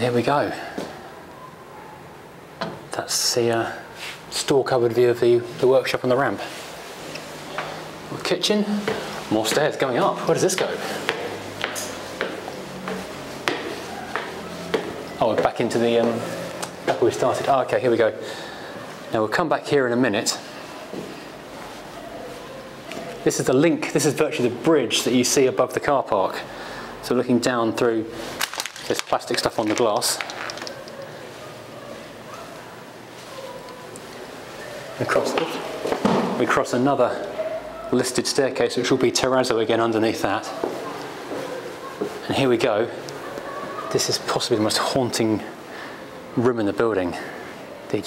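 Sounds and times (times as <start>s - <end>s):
distant street traffic: 0.0s - 48.0s
footsteps on gritty stairs: 10.5s - 16.2s.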